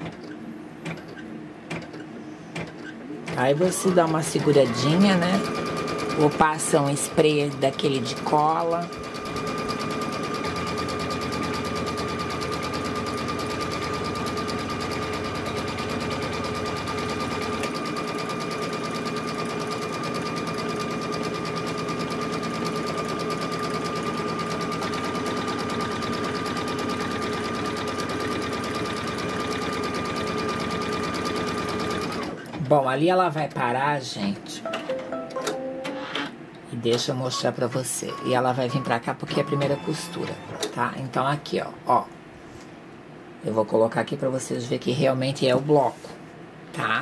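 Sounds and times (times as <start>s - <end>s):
embroidery machine stitching: 3.3s - 32.4s.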